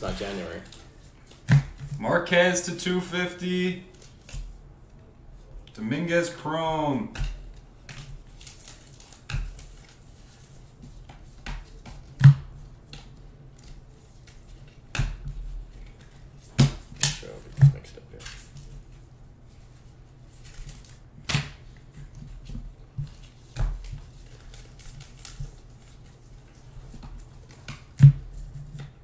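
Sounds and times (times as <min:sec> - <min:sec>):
cards clicking and snapping: 0:07.2 - 0:10.0, 0:23.1 - 0:26.2.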